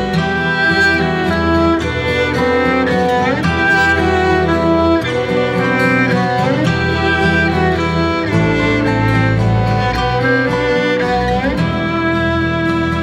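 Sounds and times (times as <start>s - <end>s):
acoustic guitar: 0.0s - 13.0s
fiddle melody: 0.0s - 13.0s
low sustained bass tones: 0.0s - 13.0s.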